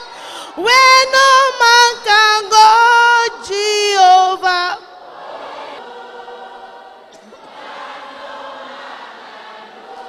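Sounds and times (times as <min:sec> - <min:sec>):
woman singing into a microphone: 0:00.0 - 0:05.0.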